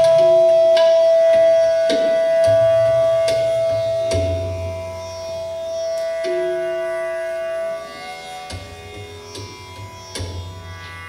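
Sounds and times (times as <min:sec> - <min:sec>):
hand drum strokes: 0:00.0 - 0:06.8
flute holding long note: 0:00.0 - 0:09.8.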